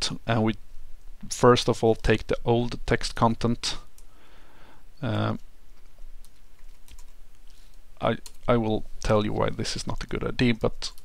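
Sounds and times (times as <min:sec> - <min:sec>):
computer keyboard typing: 0:05.9 - 0:07.2, 0:08.2 - 0:08.5.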